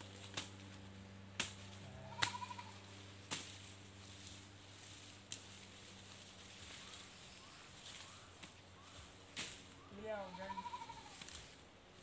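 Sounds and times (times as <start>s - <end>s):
chopping strikes on stalks: 0.1s - 2.6s, 3.2s - 3.8s, 9.3s - 9.8s
animal bleat: 1.8s - 2.9s, 10.0s - 11.3s.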